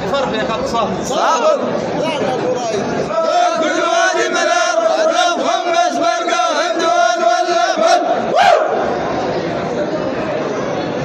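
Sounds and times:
men chanting in unison: 0:03.1 - 0:08.3.

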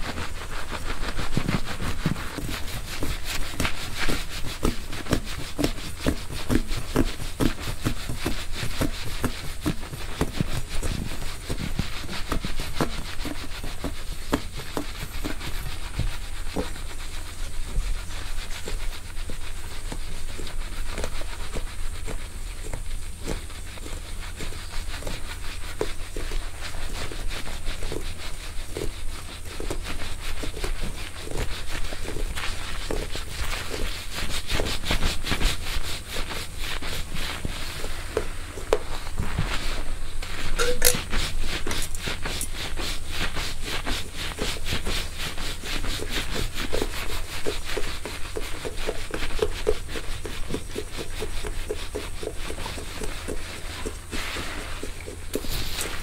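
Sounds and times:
steady low hum: 0:00.0 - 0:48.3
metal prongs scratching hair: 0:40.3 - 0:42.8.

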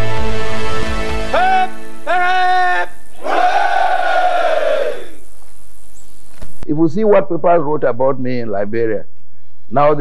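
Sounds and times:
soldiers shouting together: 0:01.3 - 0:05.2.

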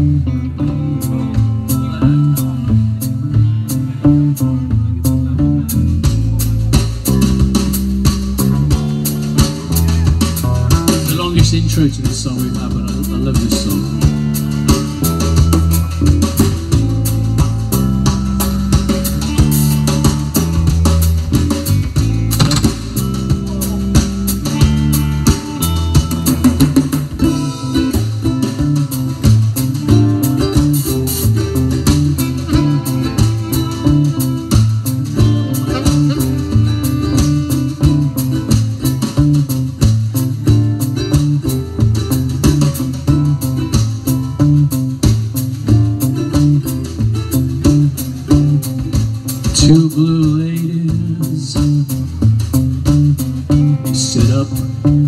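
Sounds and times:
bass line: 0:00.0 - 0:55.0
drum kit beat: 0:00.0 - 0:55.0
guitars: 0:00.0 - 0:55.0.

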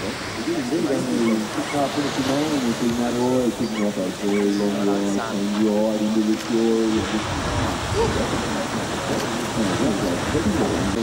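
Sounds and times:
rushing noise: 0:00.0 - 0:11.0.

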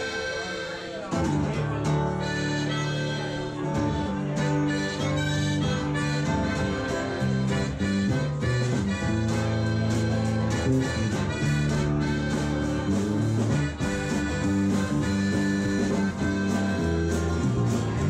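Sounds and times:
harmonica sustained notes: 0:00.0 - 0:18.0
strummed acoustic guitar: 0:00.0 - 0:18.0.

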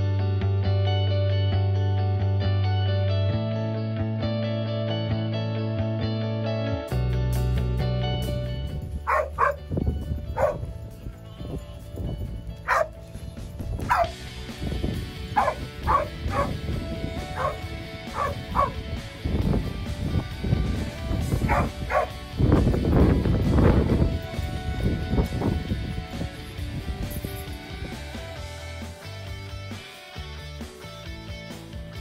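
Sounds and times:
background music: 0:00.0 - 0:32.0
dog barking: 0:09.1 - 0:09.7, 0:10.4 - 0:10.7, 0:12.6 - 0:13.0, 0:13.8 - 0:14.2, 0:15.4 - 0:16.6, 0:17.2 - 0:18.8, 0:21.4 - 0:22.2.

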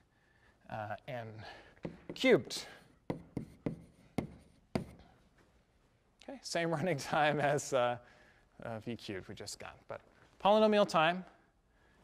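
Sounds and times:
chalk tapping on blackboard: 0:01.8 - 0:02.3, 0:03.0 - 0:05.1.

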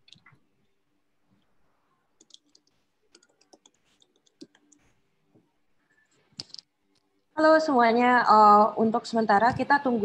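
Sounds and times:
faint computer clicking: 0:02.2 - 0:04.9.

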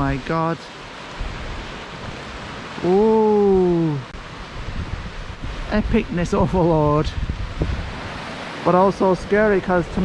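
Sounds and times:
sea surf on rocks: 0:00.0 - 0:10.0
wind buffeting microphone: 0:00.0 - 0:10.0
man's long falling ooh: 0:02.8 - 0:04.1.

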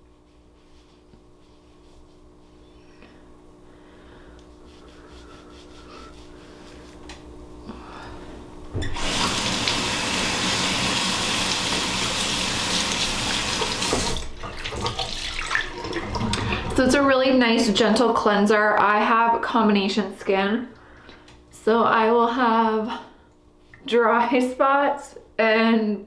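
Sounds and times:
sink tap running into basin: 0:08.8 - 0:16.9.

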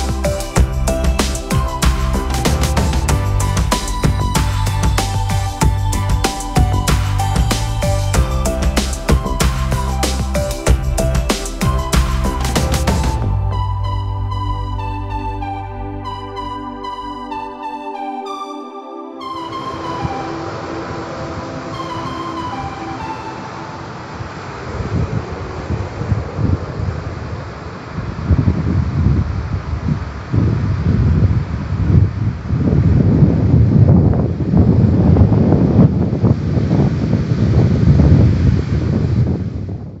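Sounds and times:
wind buffeting microphone: 0:19.5 - 0:40.0.

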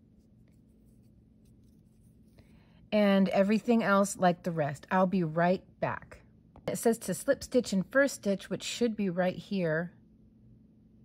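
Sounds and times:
crochet hook rustling yarn: 0:00.0 - 0:02.5.

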